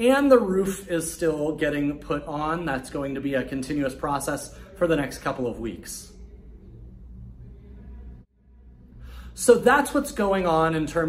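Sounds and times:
low outdoor rumble: 6.0s - 9.4s.

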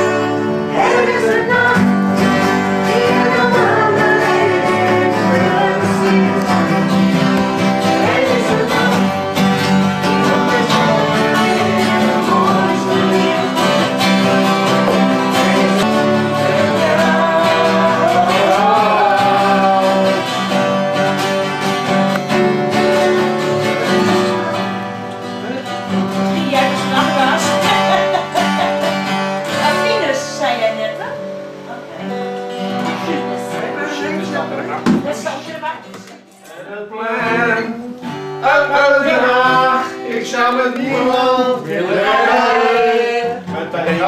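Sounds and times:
acoustic guitars strumming: 0.0s - 44.0s.

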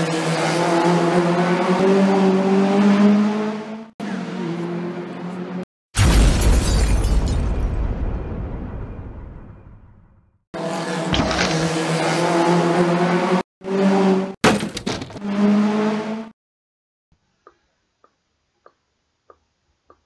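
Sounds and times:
car engine sound: 10.6s - 16.3s.

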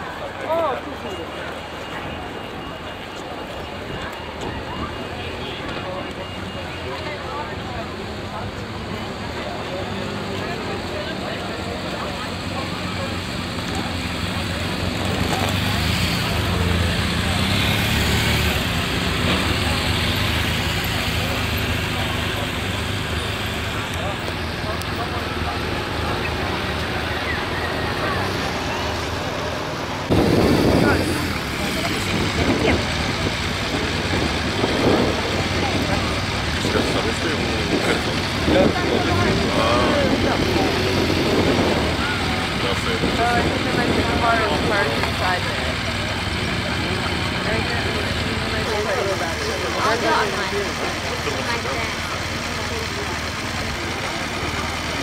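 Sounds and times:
crowd chatter: 0.0s - 55.0s
motorcycle idling: 9.2s - 55.0s
motorcycles passing at low speed: 9.5s - 55.0s.

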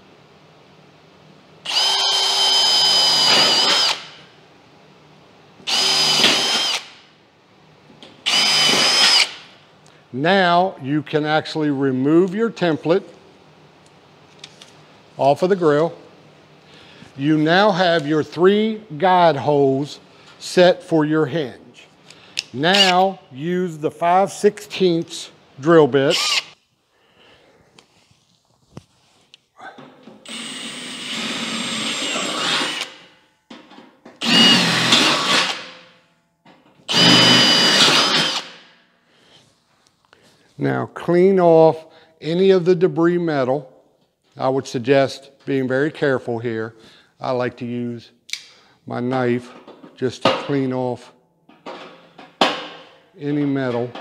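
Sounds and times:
cordless drill boring through metal: 1.7s - 4.1s, 5.7s - 6.9s, 8.3s - 9.4s, 26.1s - 26.6s, 30.3s - 33.0s, 34.2s - 35.6s, 36.9s - 38.5s
high squeal of drill bit: 36.9s - 38.4s.

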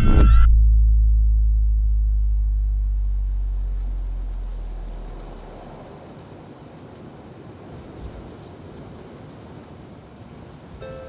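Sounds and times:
deep bass tone ringing: 0.0s - 5.5s.

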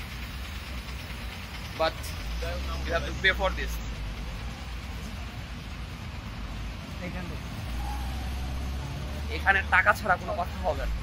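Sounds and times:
street background noise: 0.0s - 11.0s
vehicle engine rumble: 0.0s - 11.0s.

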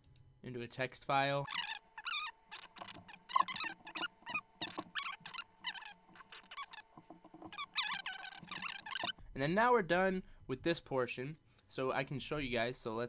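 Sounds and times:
keyboard and mouse clicks: 1.5s - 9.2s
squeaks: 1.5s - 9.2s.

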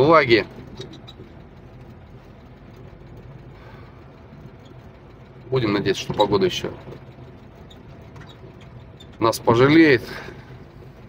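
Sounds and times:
faint rattling clicks: 0.0s - 11.0s
truck engine drone: 0.0s - 11.0s.

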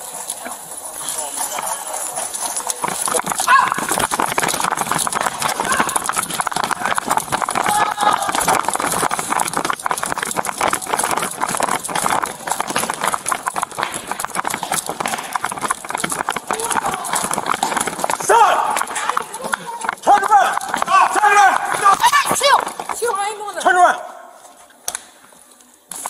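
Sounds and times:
running footsteps on hard floor: 0.0s - 24.6s
camera jolting and rubbing: 2.2s - 20.0s.

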